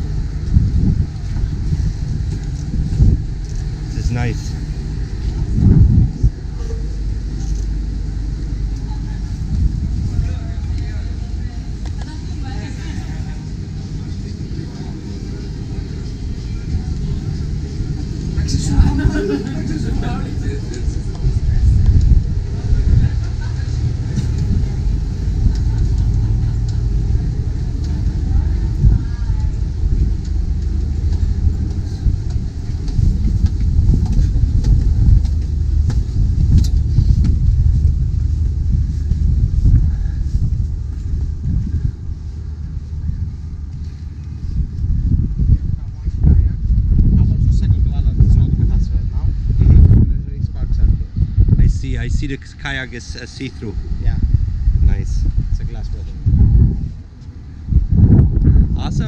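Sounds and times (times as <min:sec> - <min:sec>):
wind buffeting microphone: 0:00.0 - 0:59.0
muffled voices: 0:01.2 - 0:56.4.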